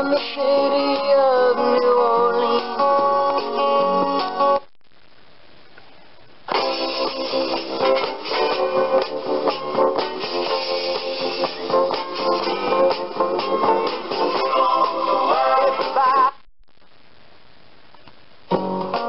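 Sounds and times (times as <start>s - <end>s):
songs through small loudspeaker: 0.0s - 4.7s, 6.6s - 16.5s
strummed guitar: 0.0s - 4.7s, 18.5s - 19.0s
faint hiss: 0.0s - 19.0s.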